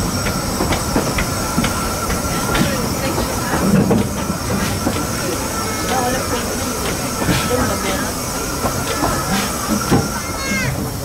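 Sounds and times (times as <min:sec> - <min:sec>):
train coach rumbling on rails: 0:00.0 - 0:11.0.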